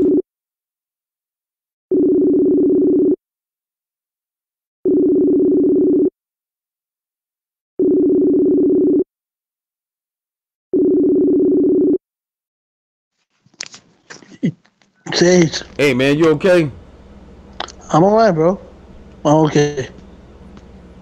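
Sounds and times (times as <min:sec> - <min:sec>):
phone ringback tone: 0:01.9 - 0:03.2, 0:04.9 - 0:06.1, 0:07.8 - 0:09.1, 0:10.8 - 0:12.0.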